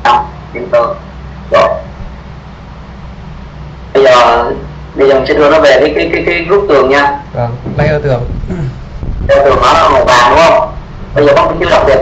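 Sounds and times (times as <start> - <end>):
steady low hum: 0.0 - 12.0
man speaking over a call: 7.3 - 8.6.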